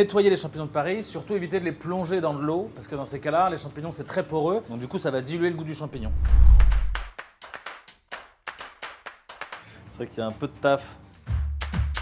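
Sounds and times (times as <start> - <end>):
sharp clap-like taps: 6.6 - 9.7, 11.6 - 12.0.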